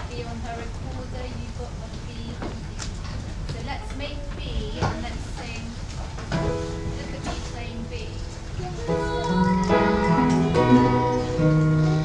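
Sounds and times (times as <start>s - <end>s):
acoustic guitars and keyboard: 6.2s - 12.0s
bass notes: 8.6s - 12.0s.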